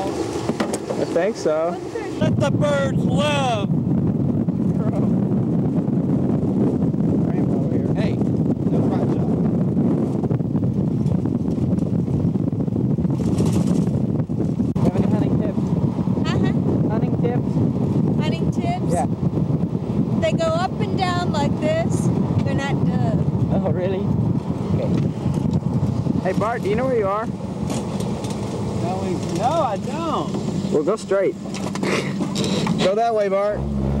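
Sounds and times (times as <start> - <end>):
open vehicle rumble: 0.0 - 34.0
wind buffeting microphone: 0.0 - 34.0
woman's high voice: 18.2 - 19.0, 20.2 - 23.2.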